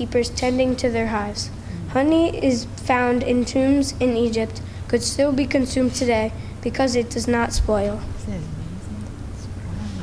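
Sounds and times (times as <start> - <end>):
low hum of room noise: 0.0 - 10.0.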